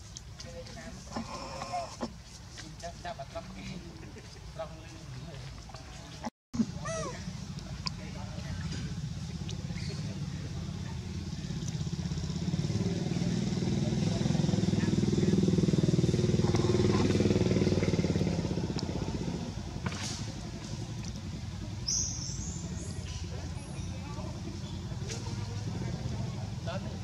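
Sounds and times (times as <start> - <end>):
vehicle engine passing: 7.2 - 21.8, 22.6 - 27.0.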